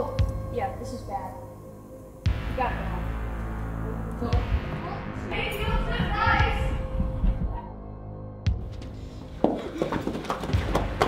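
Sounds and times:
people running on hard floor: 8.6s - 11.0s.

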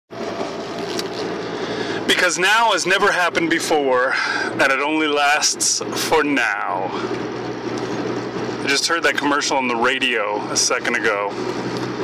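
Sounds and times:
road and engine noise in car: 0.1s - 12.0s.

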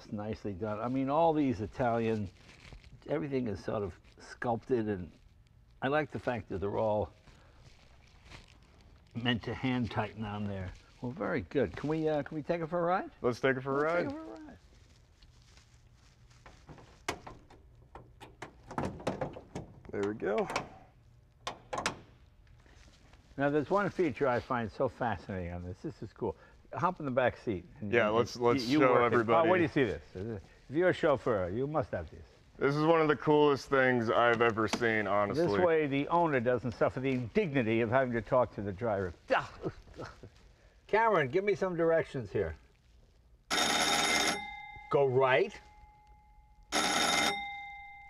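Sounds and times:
signalling bell ringing: 43.5s - 48.0s.

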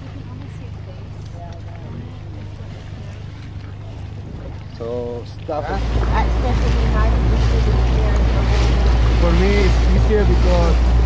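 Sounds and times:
outboard motor running: 0.0s - 11.0s
wind and water hiss: 0.0s - 11.0s.

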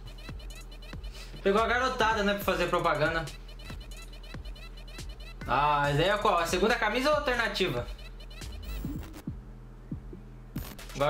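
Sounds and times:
steady low hum: 7.8s - 11.0s
low heartbeat-like thumps: 8.4s - 10.8s.

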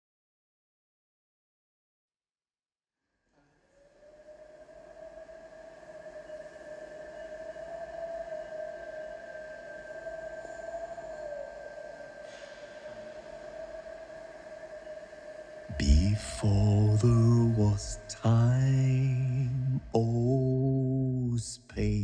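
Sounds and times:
synth pad drone: 3.8s - 22.0s.

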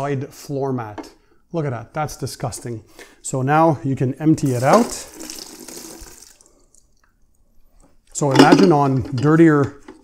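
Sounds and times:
water pouring into a plastic bucket: 4.4s - 6.8s.

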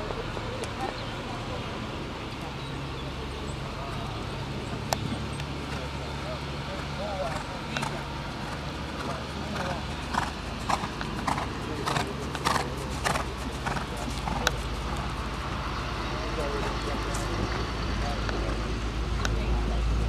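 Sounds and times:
steady low rumble: 0.0s - 20.0s
horse hooves cantering on dirt: 6.7s - 18.7s.

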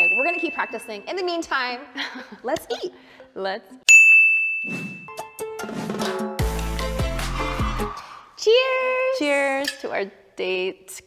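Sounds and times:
bright ding: 3.9s - 5.2s.

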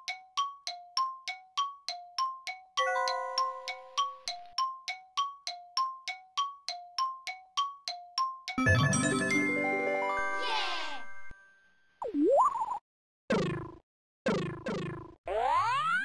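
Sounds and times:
bright chime plinks: 8.6s - 11.5s
shimmering chord with sparkle: 8.6s - 11.6s.

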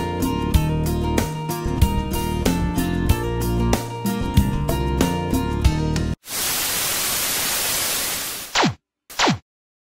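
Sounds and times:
background music: 0.0s - 6.2s
television static hiss: 6.3s - 8.5s.

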